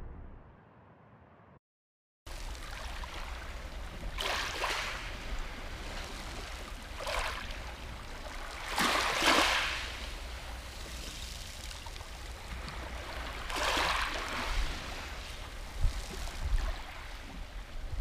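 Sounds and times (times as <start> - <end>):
waves washing up pebble shore: 8.2 - 11.9, 12.5 - 17.2.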